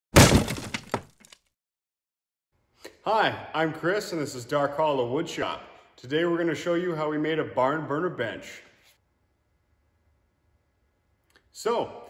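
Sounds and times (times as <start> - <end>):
crash smash with clinks: 0.1 - 1.1.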